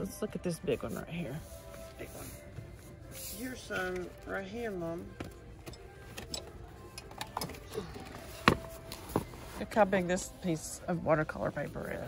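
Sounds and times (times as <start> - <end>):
faint background music: 0.0 - 12.0.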